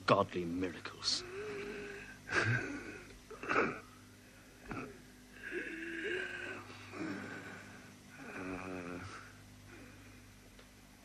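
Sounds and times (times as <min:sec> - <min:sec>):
man groaning: 0:01.1 - 0:04.0, 0:04.6 - 0:09.3
man breathing heavily: 0:01.2 - 0:10.5.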